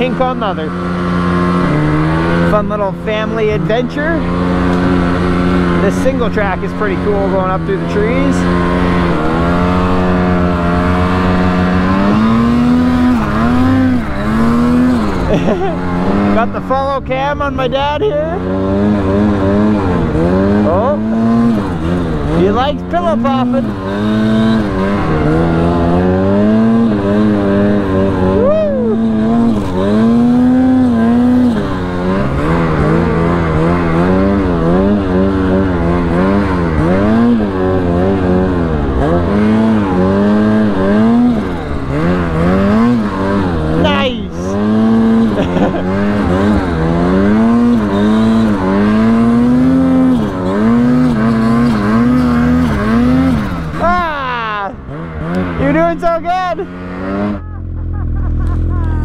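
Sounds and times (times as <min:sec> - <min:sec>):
snowmobile engine revving: 0:00.0 - 0:59.0.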